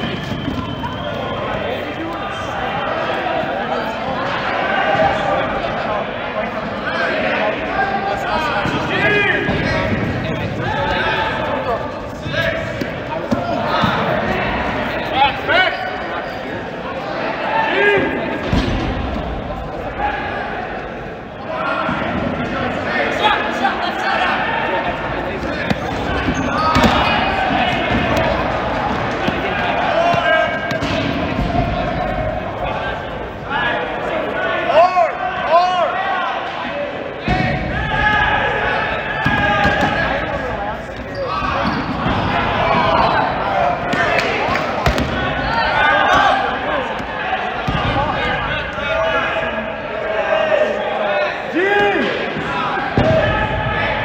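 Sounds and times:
players shouting: 0.0s - 54.0s
balls bouncing on gym floor: 12.5s - 14.3s, 25.3s - 32.2s, 43.9s - 45.3s.

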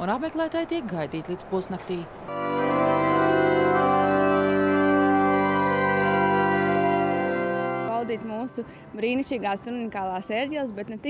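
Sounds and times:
church pipe organ chord: 2.3s - 8.6s.

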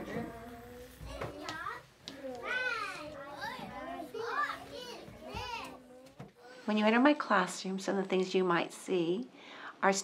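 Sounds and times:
young children chattering: 0.0s - 6.7s.

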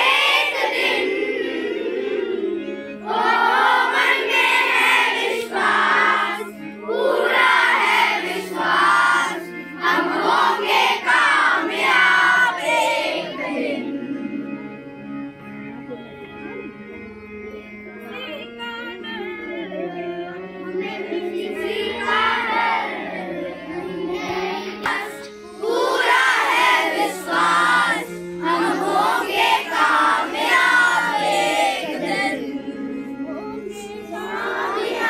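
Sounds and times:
children singing in unison: 0.0s - 14.8s, 20.6s - 35.0s.

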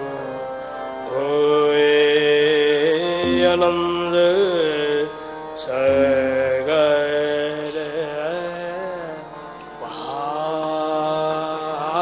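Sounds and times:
harmonium chords: 0.0s - 12.0s
people singing devotional line: 1.1s - 12.0s
tabla: 1.8s - 12.0s.

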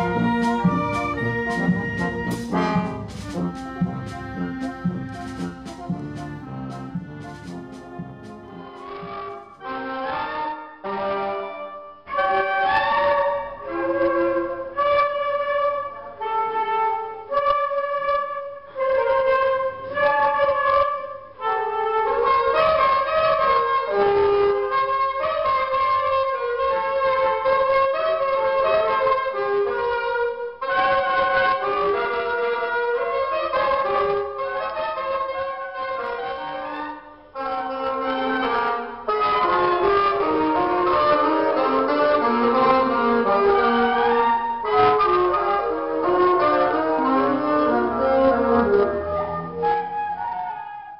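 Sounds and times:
wind ensemble playing a melody: 0.0s - 50.9s.

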